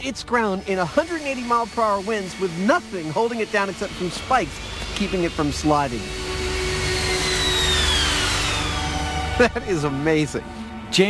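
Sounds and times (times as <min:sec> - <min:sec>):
high whine falling in pitch: 0:00.3 - 0:11.0
jet engine roar: 0:00.6 - 0:10.9.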